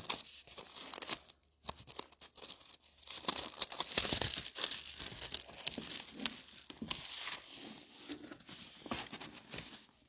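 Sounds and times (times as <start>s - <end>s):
book pages turning: 0.0s - 10.0s.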